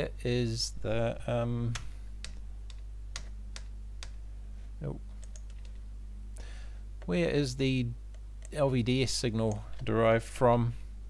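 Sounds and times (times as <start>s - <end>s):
steady low hum: 0.0s - 11.0s
computer keyboard clicks: 1.7s - 4.2s, 5.2s - 5.8s.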